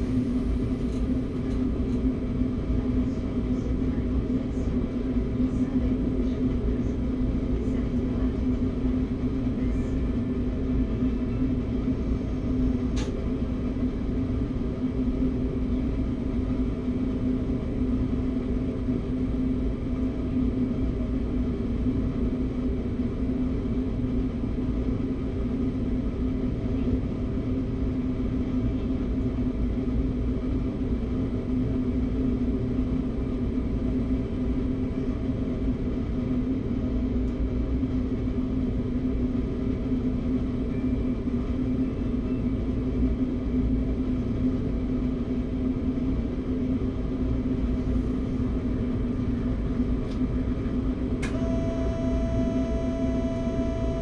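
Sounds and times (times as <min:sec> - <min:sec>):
electric train hum and rumble: 0:00.0 - 0:54.0.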